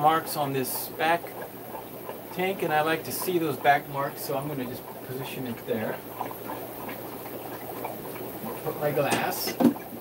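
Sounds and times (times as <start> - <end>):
bubbling aquarium water: 0.0 - 10.0.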